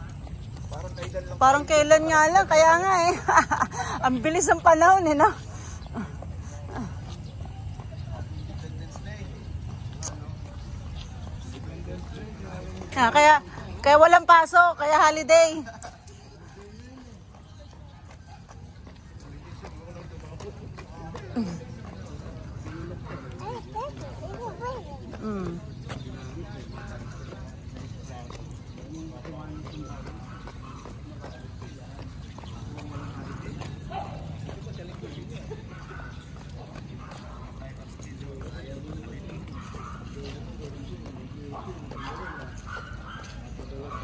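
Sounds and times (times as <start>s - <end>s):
distant voices: 0.0s - 44.0s
footsteps on concrete: 0.0s - 44.0s
steady outdoor hum: 0.0s - 44.0s.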